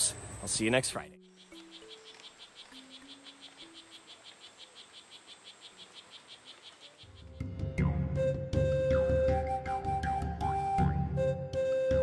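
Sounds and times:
music: 0:00.4 - 0:03.8, 0:07.1 - 0:12.0
frog chirping: 0:01.0 - 0:07.5.

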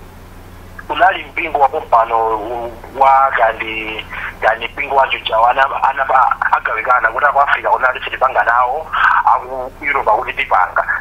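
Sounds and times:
telephone-like speech: 0:00.8 - 0:11.0.

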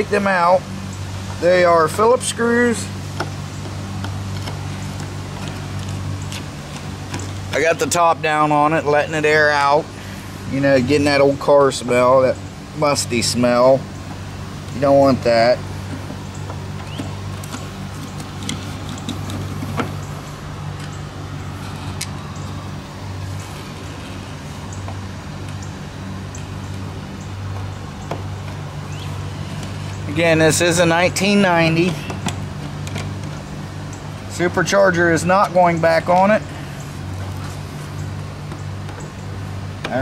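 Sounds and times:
engine-like drone: 0:00.0 - 0:40.0
steady low hum: 0:00.0 - 0:40.0.

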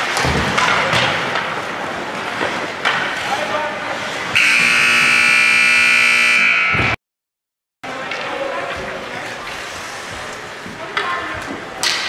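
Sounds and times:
scoreboard horn blast: 0:04.4 - 0:07.0.

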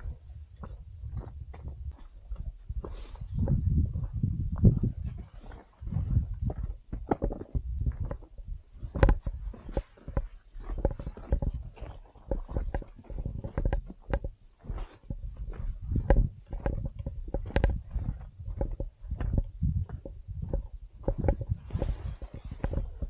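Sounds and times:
footsteps on rocky trail: 0:00.0 - 0:23.0.

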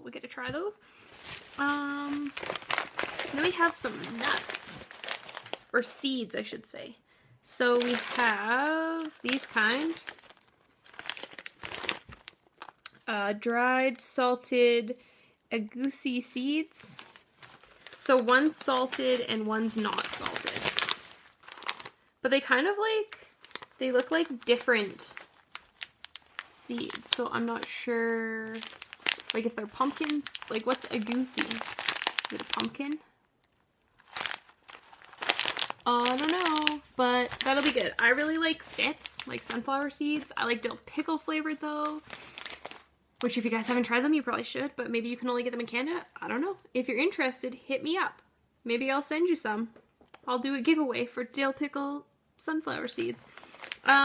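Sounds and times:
plastic snack packets crinkling: 0:00.9 - 0:05.8, 0:07.6 - 0:13.0, 0:16.7 - 0:44.0, 0:52.8 - 0:54.0.

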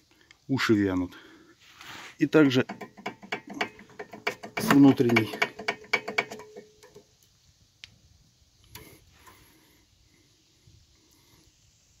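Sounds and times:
metallic clicking on brake caliper: 0:02.6 - 0:07.0.

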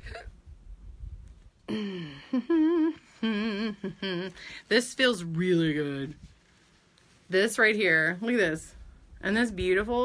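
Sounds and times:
woman humming: 0:01.7 - 0:04.5.

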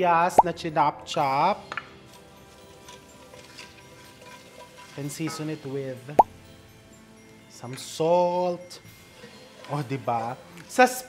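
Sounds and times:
soft background music: 0:00.0 - 0:11.0
wooden spoon stirring: 0:02.4 - 0:06.0
onion sizzling in oil: 0:02.8 - 0:05.0.

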